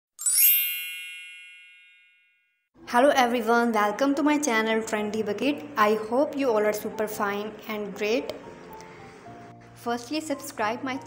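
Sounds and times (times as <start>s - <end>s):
shimmering chime ding: 0.2s - 2.6s.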